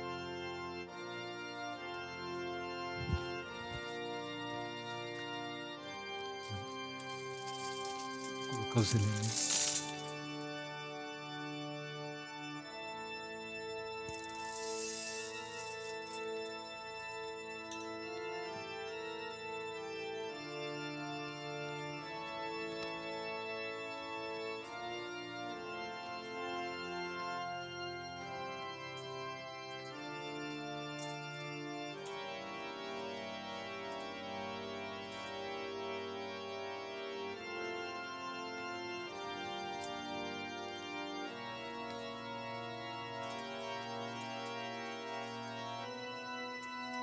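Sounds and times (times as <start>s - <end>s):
organ sustained chord: 0.0s - 47.0s
metallic jingling shimmer: 6.4s - 10.1s, 14.1s - 16.3s.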